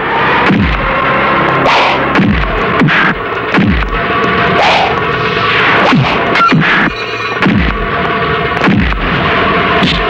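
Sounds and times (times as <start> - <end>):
background music: 0.0 - 10.0
punch and kick impacts: 0.4 - 0.9, 1.8 - 4.0, 5.9 - 7.8, 8.6 - 9.0.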